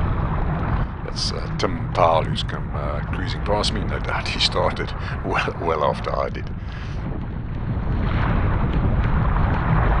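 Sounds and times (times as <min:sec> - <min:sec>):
strong wind buffeting microphone: 0:00.0 - 0:10.0
choppy water splashing on hull: 0:07.0 - 0:10.0.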